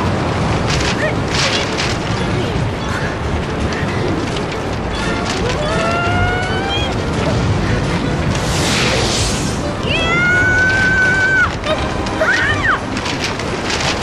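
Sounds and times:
rushing wind roar: 0.0 - 14.0
music: 1.8 - 14.0.

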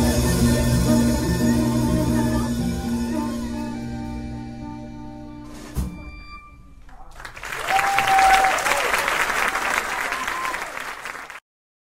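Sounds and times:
audience applauding: 7.1 - 11.4
audience calls and whistles: 7.4 - 11.3.

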